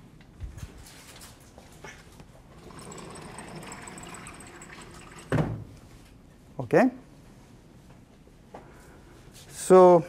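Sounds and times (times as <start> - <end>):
blackboard panels rolling rattle: 2.5 - 5.7.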